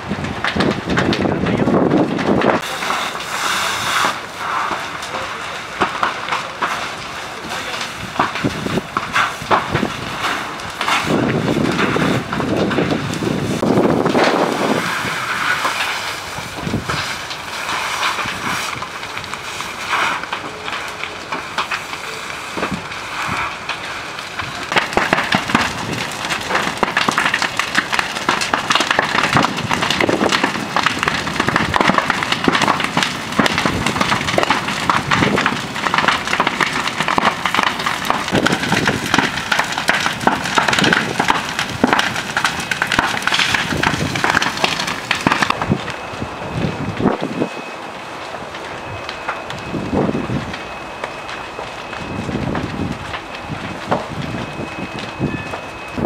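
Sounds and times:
fire crackling and popping: 0.0 - 56.0.

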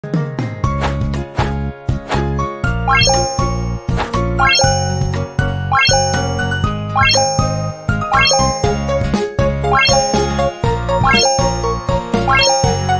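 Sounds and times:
upbeat jingle music: 2.8 - 12.9.

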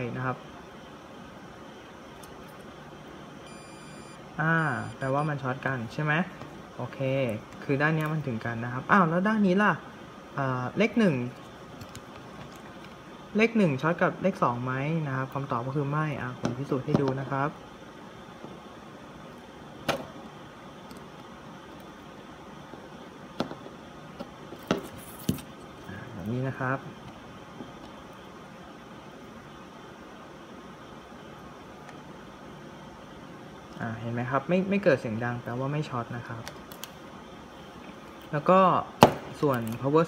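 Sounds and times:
steady low hiss: 0.0 - 40.0
multimeter high beep: 3.4 - 5.5.

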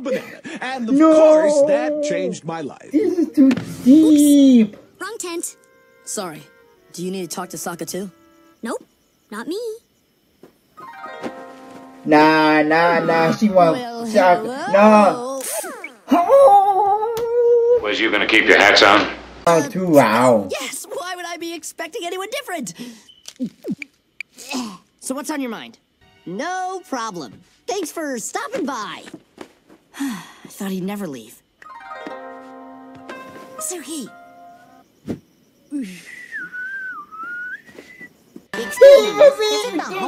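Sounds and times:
cartoon voice humming: 0.9 - 2.4
person whistling wavering note: 36.1 - 38.1.

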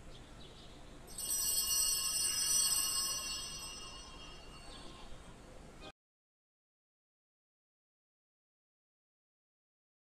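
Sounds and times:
small bell ringing: 1.1 - 5.2.

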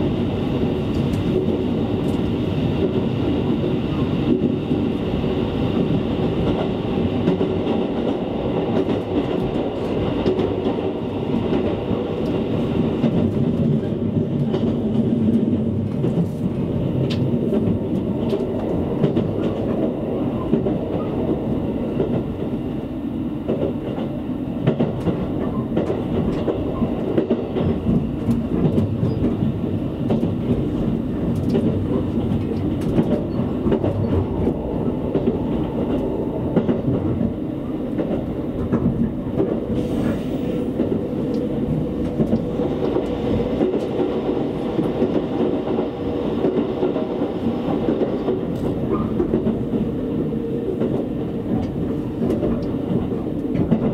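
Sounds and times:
train wheels rumbling on rail: 0.0 - 53.9.

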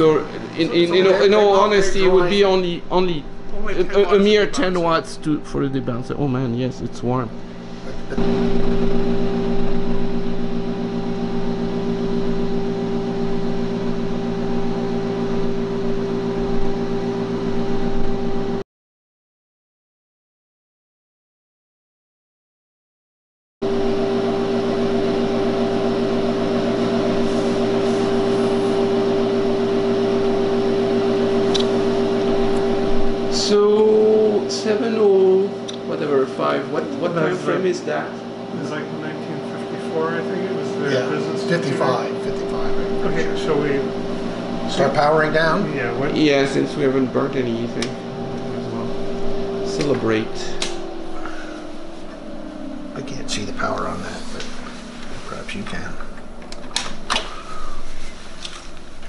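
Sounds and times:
person speaking: 0.0 - 8.3
electrical hum: 0.0 - 18.6, 23.6 - 59.0
fan-like hiss: 24.1 - 59.0.

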